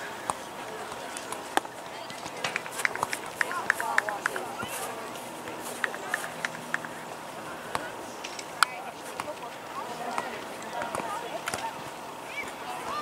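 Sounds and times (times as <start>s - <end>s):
distant voices outdoors: 0.0s - 13.0s.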